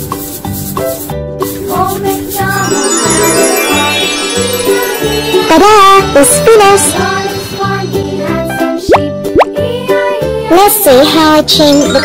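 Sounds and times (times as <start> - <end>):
upbeat children's music: 0.0 - 12.0
upward-sliding sound effects: 2.2 - 9.5, 11.6 - 12.0.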